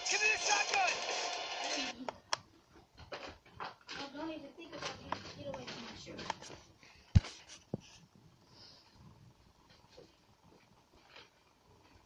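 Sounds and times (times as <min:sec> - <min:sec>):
action film noise with music: 0:00.0 - 0:02.0.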